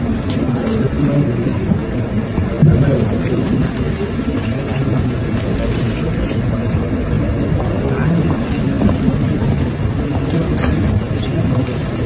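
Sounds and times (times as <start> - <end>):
babble of many voices: 0.0 - 12.0
low room rumble: 0.0 - 12.0.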